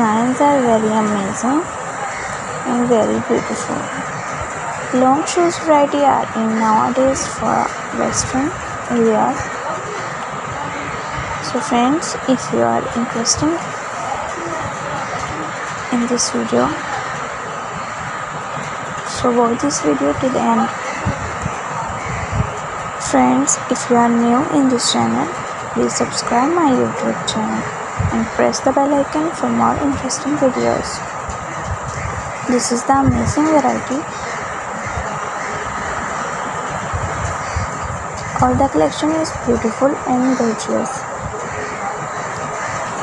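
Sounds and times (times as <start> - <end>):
person narrating: 0.0 - 1.7, 2.7 - 4.1, 4.9 - 9.5, 11.4 - 13.7, 15.9 - 16.8, 19.1 - 21.4, 23.0 - 31.1, 32.5 - 34.1, 38.3 - 41.0
steady rushing noise: 0.0 - 43.0.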